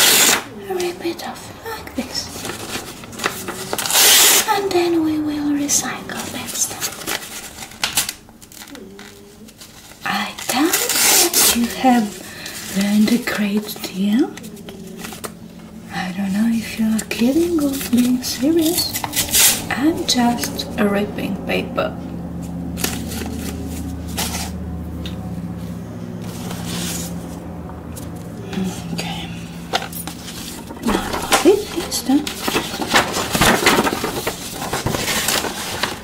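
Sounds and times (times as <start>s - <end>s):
paper tearing: 0.0s - 0.5s, 2.3s - 4.7s, 6.6s - 13.7s, 17.2s - 20.5s, 30.1s - 36.0s
paper crinkling: 2.0s - 15.9s, 16.5s - 20.7s, 22.4s - 24.6s, 29.7s - 36.0s
woman humming: 8.5s - 10.8s, 11.4s - 23.3s, 28.2s - 30.0s, 30.7s - 32.9s.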